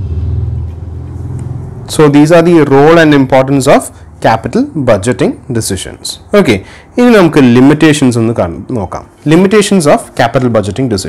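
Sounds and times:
low steady rumble: 0.0 - 9.2.

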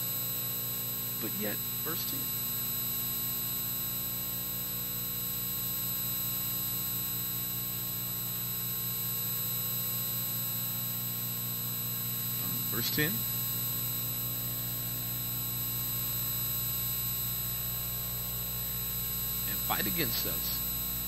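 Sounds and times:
electrical mains hum: 0.0 - 21.0
high-pitched buzz tones: 1.0 - 2.5, 12.1 - 14.8, 19.0 - 21.0.

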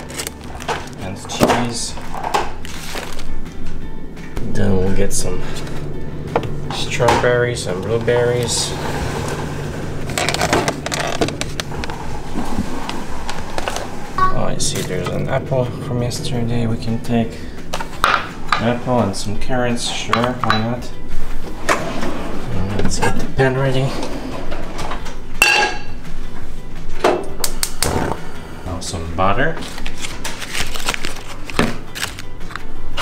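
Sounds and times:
plastic containers clicking and rattling: 10.1 - 11.9
frying pan clanging on metal: 25.4 - 26.0.

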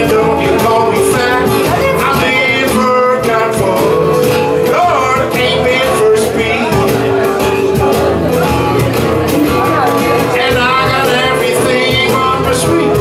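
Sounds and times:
man singing: 0.0 - 13.0
steady beat: 0.0 - 13.0
strummed acoustic guitar: 0.0 - 13.0.

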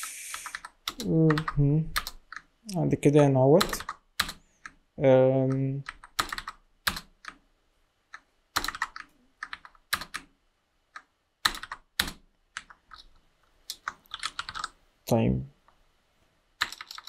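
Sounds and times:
computer keyboard typing: 0.3 - 2.5, 3.6 - 4.8, 5.4 - 7.4, 8.5 - 10.3, 11.0 - 14.8, 16.6 - 17.0.

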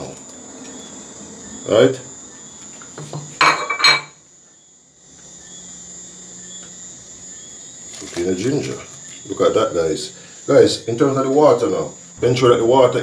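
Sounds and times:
steady high-pitched whine: 0.0 - 13.0.

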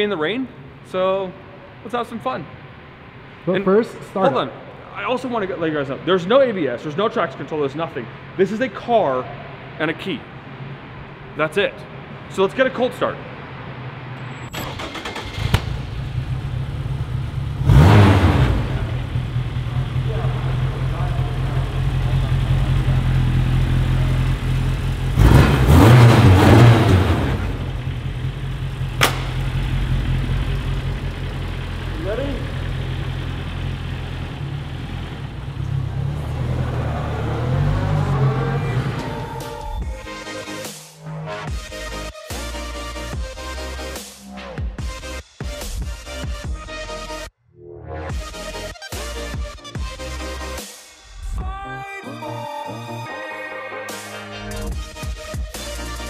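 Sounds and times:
car engine starting and revving: 14.2 - 39.9.

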